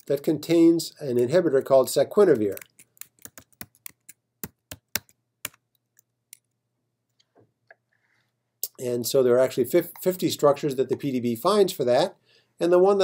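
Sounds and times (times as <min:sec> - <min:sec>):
computer keyboard typing: 0:02.4 - 0:05.6.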